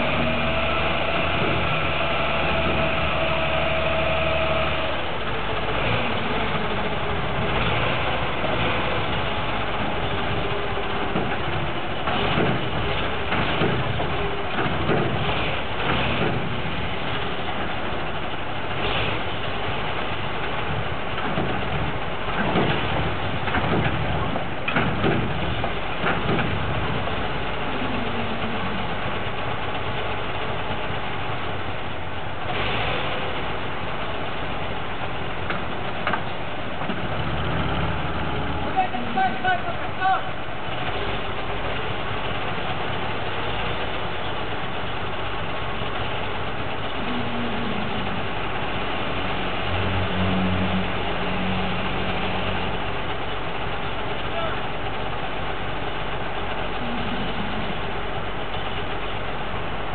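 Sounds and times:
heavy diesel engines idling: 0.0 - 59.9.

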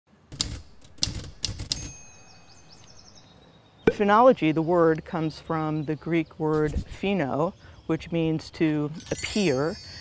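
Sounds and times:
typewriter key strikes: 0.3 - 2.0
typewriter bell ding: 1.6 - 2.7, 9.0 - 10.0.

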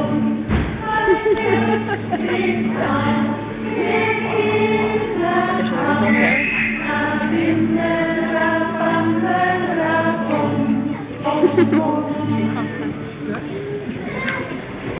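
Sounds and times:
crowd singing together: 0.0 - 13.5.

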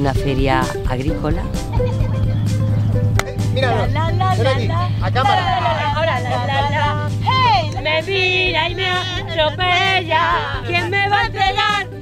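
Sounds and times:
engine humming: 0.0 - 12.0
people shouting and cheering: 3.4 - 12.0.

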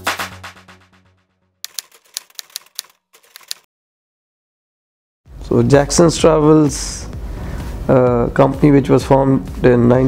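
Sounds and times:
typewriter key clicks: 1.7 - 3.6
music track: 5.3 - 10.0.

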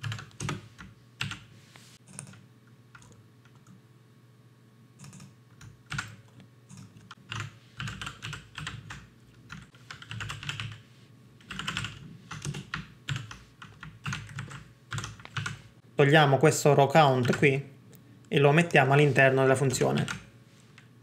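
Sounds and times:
computer keyboard typing: 0.0 - 3.8, 5.0 - 10.8, 11.4 - 15.6, 17.2 - 17.4, 20.0 - 20.3.

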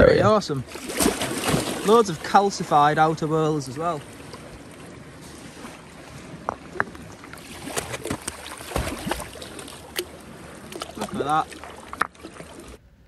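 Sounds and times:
sea water lapping on rocks: 0.3 - 12.8.

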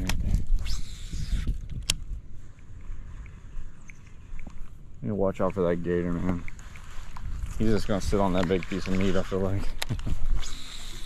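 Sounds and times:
wind rumble on microphone: 0.0 - 11.0
reel spool hissing: 0.6 - 1.5, 10.3 - 11.0.

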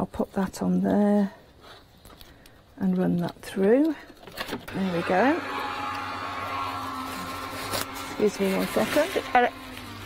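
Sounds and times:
die-cutting machine motor hum: 4.7 - 10.0.

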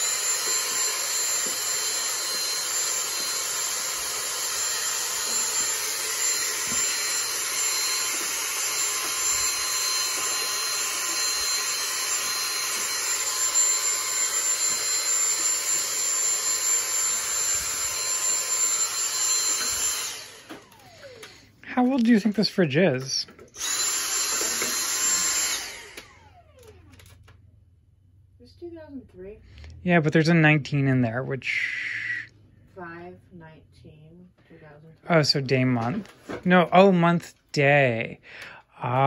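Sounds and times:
vacuum cleaner whining: 0.0 - 27.5, 28.9 - 33.1.

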